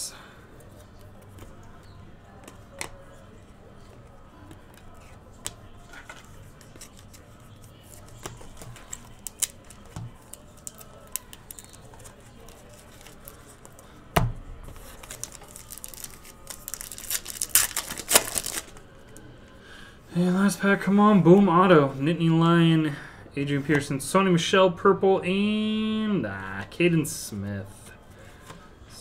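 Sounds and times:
card pack wrapper tearing: 8.8 - 13.4, 14.8 - 18.8.

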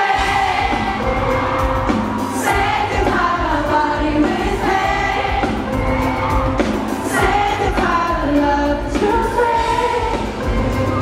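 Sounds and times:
band with bass beat: 0.0 - 11.0.

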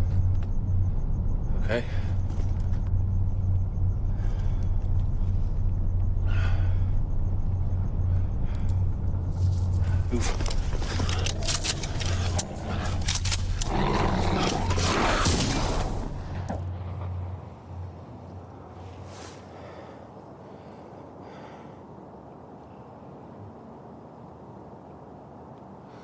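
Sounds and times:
low rumbling drone: 0.0 - 21.1
sharp cracks and snaps: 9.5 - 16.0.

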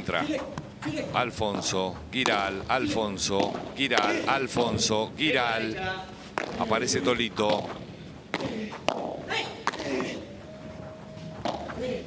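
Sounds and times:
rackets hitting ball: 1.4 - 4.9, 6.3 - 10.2, 11.2 - 12.0.

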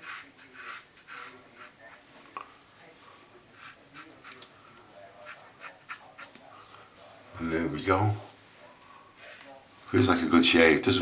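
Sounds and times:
razor scraping stubble: 0.0 - 2.5, 3.5 - 6.8.

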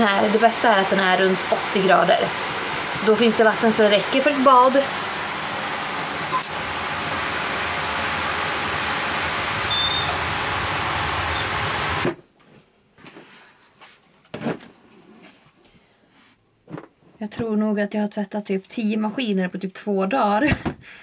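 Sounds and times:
boiler rushing noise: 0.0 - 12.2.

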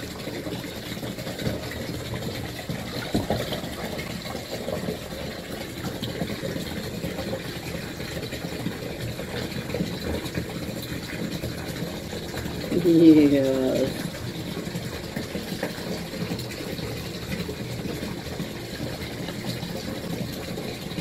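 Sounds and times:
bathwater splashing and sloshing: 0.0 - 21.0.

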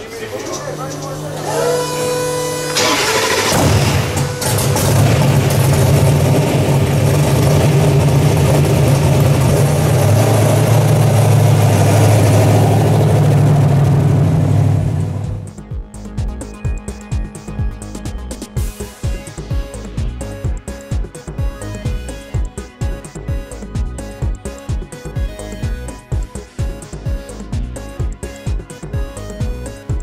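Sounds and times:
car engine revving on dyno: 1.3 - 15.5.

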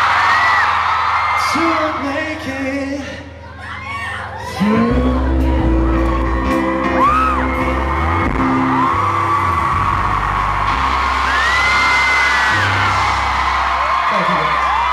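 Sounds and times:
crowd cheering: 0.0 - 2.8, 3.4 - 14.9
fans screaming and whooping: 0.0 - 14.9
live band playing pop ballad: 4.3 - 14.9.

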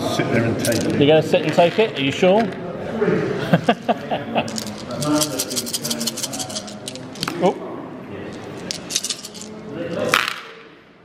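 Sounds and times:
dice clattering on table: 0.6 - 2.6, 4.5 - 7.4, 8.4 - 10.6
sharp dice clack: 8.4 - 10.7.

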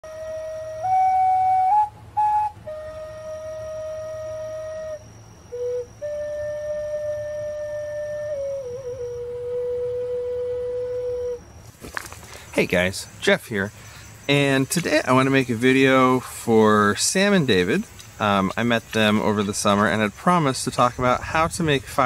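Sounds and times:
slow flute melody: 0.0 - 12.1.

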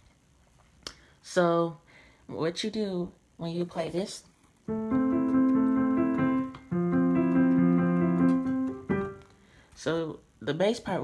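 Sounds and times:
digital piano chords: 4.7 - 9.4.

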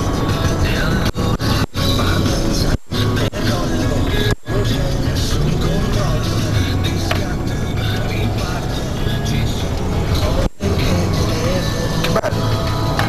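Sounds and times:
car driving on road: 0.0 - 13.0
loud music: 0.0 - 13.0.

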